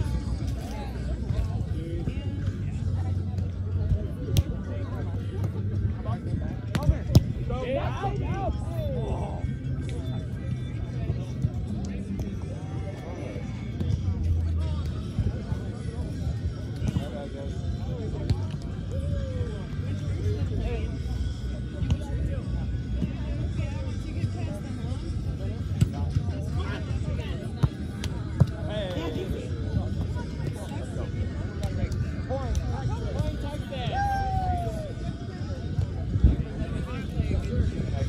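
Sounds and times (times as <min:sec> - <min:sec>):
music: 0:00.0 - 0:38.0.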